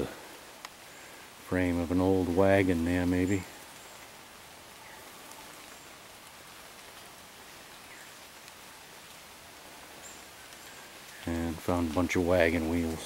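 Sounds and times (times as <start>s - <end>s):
faint woodland hiss: 0.0s - 13.0s
soft ticks: 0.6s - 0.8s, 8.4s - 9.2s.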